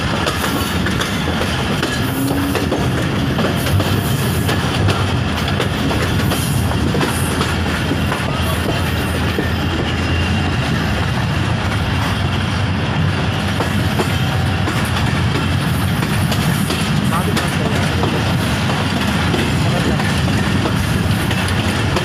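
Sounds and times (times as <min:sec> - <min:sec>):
train clicks and clatter: 0:00.0 - 0:22.0
train wheels rumbling on rails: 0:00.0 - 0:22.0.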